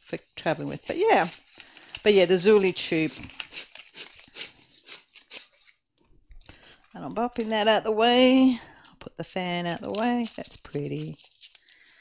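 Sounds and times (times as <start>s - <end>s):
plastic packaging crinkling: 0.2s - 5.8s, 6.8s - 12.0s.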